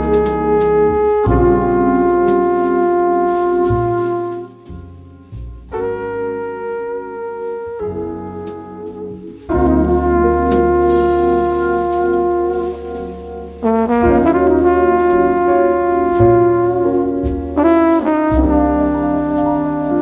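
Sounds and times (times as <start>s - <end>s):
jazz trumpet over band: 0.0s - 20.0s.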